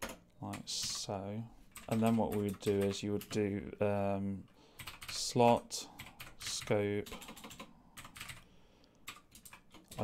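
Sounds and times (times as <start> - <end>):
faint computer keyboard typing: 1.7 - 3.5, 4.8 - 10.0.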